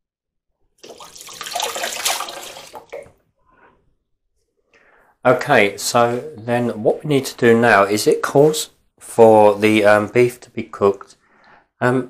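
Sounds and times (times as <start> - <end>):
tap water running over hands: 0.8 - 3.2.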